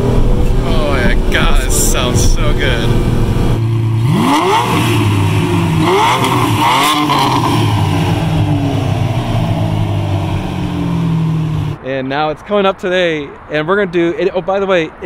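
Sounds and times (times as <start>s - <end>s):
car engine revving: 0.0s - 11.8s.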